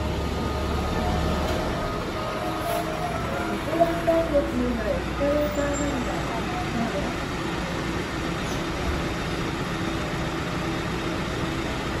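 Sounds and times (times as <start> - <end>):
road vehicles rumbling: 0.0 - 12.0.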